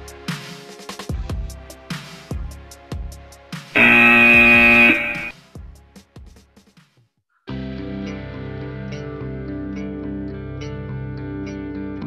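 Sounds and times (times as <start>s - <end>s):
held electronic timer tone: 3.8s - 5.3s.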